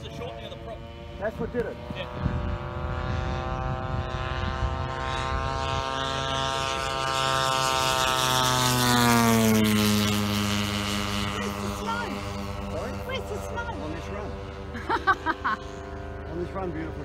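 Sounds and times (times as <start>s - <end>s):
model aircraft propeller engine drone: 0.0s - 17.0s.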